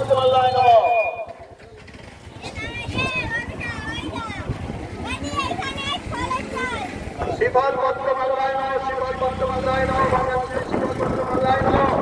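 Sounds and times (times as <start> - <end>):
vehicle passing by: 3.1 - 12.0.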